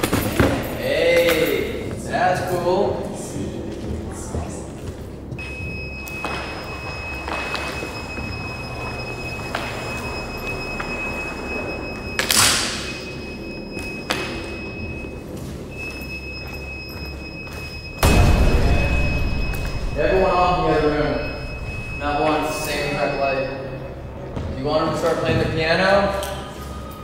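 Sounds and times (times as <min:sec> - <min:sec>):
low room rumble: 0:00.6 - 0:26.0
high electronic tone: 0:05.4 - 0:24.3.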